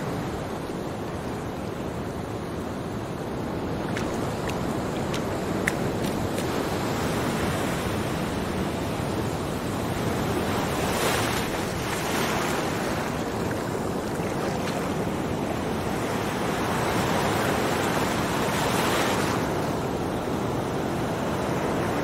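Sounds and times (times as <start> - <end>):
ocean surf: 0.0 - 22.0
wind: 0.0 - 22.0.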